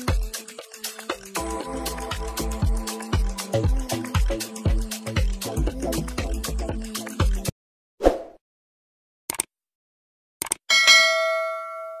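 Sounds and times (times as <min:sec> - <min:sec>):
notification bell ringing: 0:10.7 - 0:12.0.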